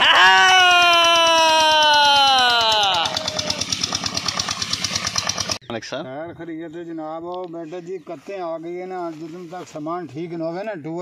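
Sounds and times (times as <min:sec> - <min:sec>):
pump engine thudding: 0:02.6 - 0:05.6.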